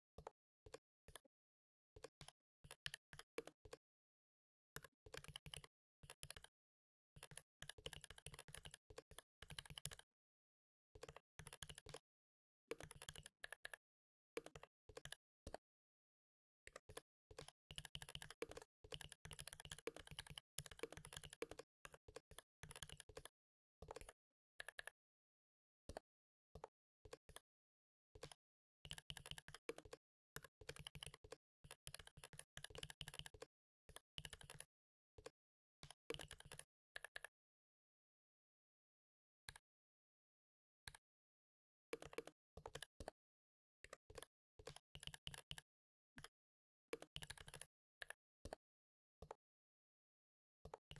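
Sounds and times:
faint keyboard typing: 0:00.2 - 0:01.3, 0:02.0 - 0:03.8, 0:04.8 - 0:06.5, 0:07.2 - 0:10.0, 0:11.0 - 0:12.0, 0:12.7 - 0:13.8, 0:14.4 - 0:15.6, 0:16.6 - 0:24.9, 0:28.2 - 0:37.3, 0:41.9 - 0:43.2, 0:43.8 - 0:45.6, 0:46.9 - 0:48.6, 0:50.6 - 0:50.9
keyboard typing: 0:16.9 - 0:24.9, 0:28.9 - 0:34.6.

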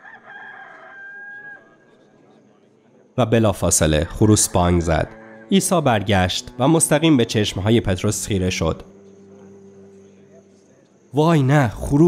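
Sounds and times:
rooster crowing: 0:00.0 - 0:01.9, 0:05.1 - 0:05.5.

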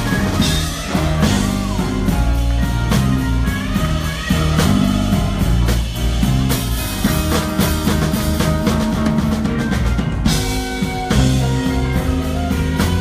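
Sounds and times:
blues-rock band playing: 0:00.0 - 0:13.0
drum hits: 0:00.0 - 0:13.0.

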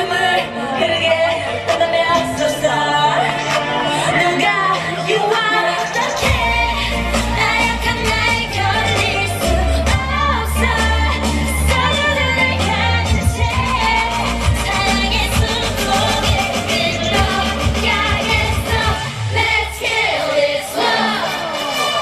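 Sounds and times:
dance pop song with female singing: 0:00.0 - 0:22.0
heavy bass line: 0:06.2 - 0:19.8.

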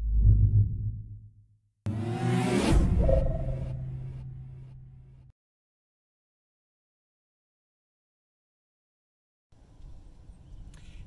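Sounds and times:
deep low boom: 0:00.0 - 0:01.4.

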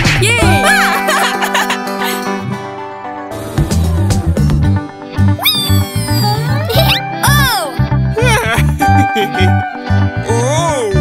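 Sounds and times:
cartoon music with pulsing bass: 0:03.4 - 0:09.6
gliding cartoon vocal sounds: 0:05.4 - 0:07.1.

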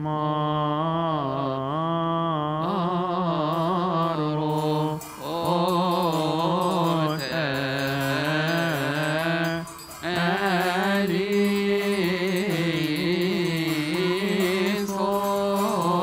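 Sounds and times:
man chanting a hymn: 0:00.0 - 0:16.0.

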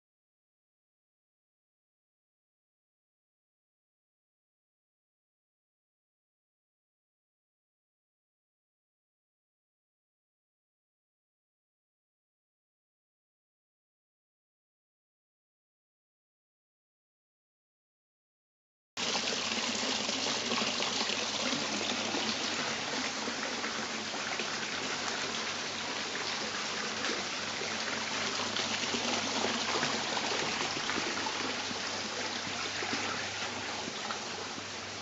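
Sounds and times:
fountain water splashing into pool: 0:19.0 - 0:35.0.

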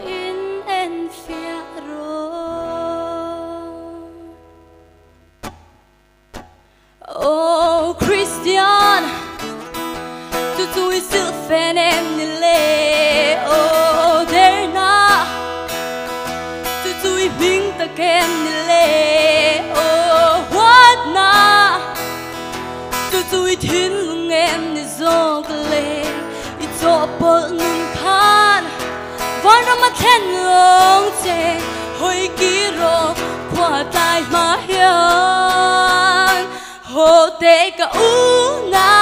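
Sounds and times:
woman singing: 0:00.0 - 0:04.5, 0:07.0 - 0:09.7, 0:10.3 - 0:15.8, 0:16.6 - 0:39.0
acoustic guitar: 0:00.0 - 0:39.0.

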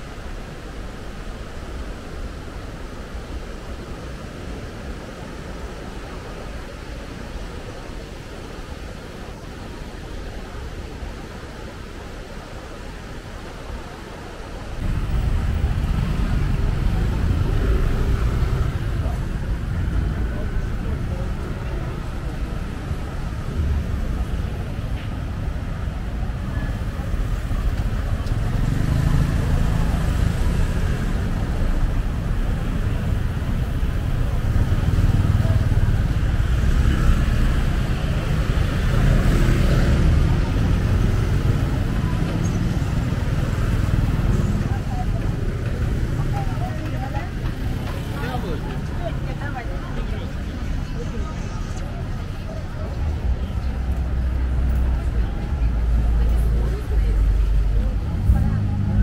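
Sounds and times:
people chattering: 0:00.0 - 0:59.0
motor scooters and cars passing: 0:14.8 - 0:59.0.

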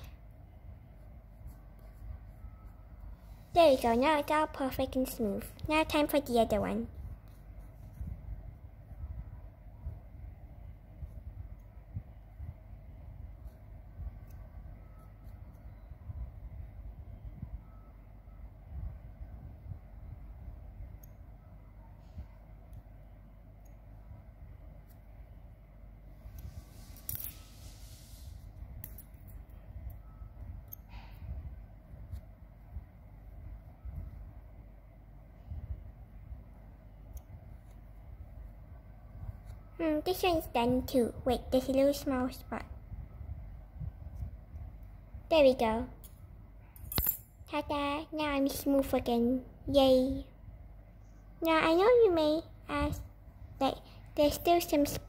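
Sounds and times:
click: 0:21.0 - 0:21.2, 0:37.1 - 0:37.3.

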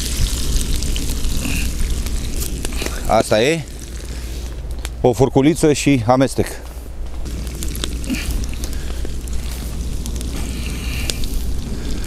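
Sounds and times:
potatoes sizzling in oil: 0:00.0 - 0:04.6, 0:07.2 - 0:12.0
constant low rumble: 0:00.0 - 0:12.0.

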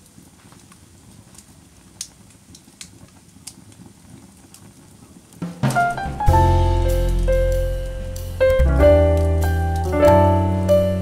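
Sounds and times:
wood fire crackling: 0:00.0 - 0:11.0
low steady rumble: 0:06.0 - 0:11.0.

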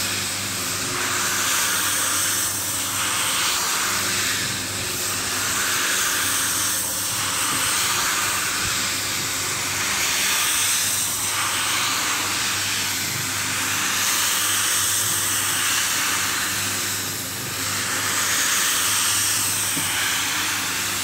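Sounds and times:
electric motor hum: 0:00.0 - 0:21.0
rotating brush hissing through foam: 0:00.0 - 0:21.0.

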